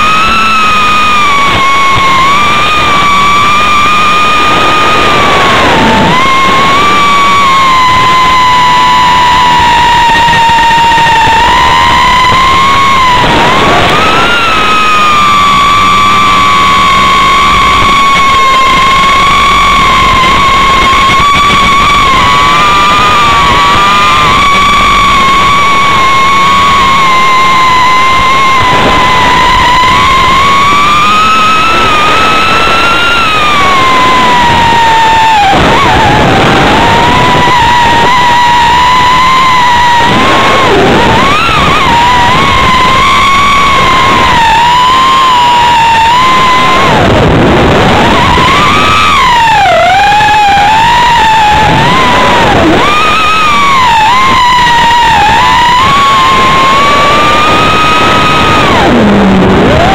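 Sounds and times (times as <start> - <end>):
drone motors whining: 0.0 - 59.9.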